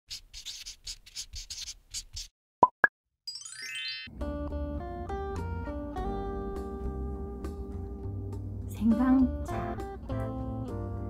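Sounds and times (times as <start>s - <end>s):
short scratchy strokes: 0.1s - 2.3s
rising chime sweep: 3.3s - 4.2s.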